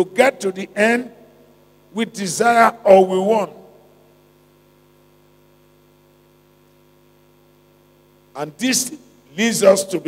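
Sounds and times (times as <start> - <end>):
faint mains hum: 0.0 - 10.0
microphone hiss: 0.0 - 10.0.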